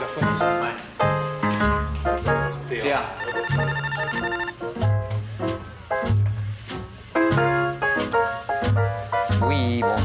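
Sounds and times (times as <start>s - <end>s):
intercom ringing electronic trill: 3.1s - 4.6s.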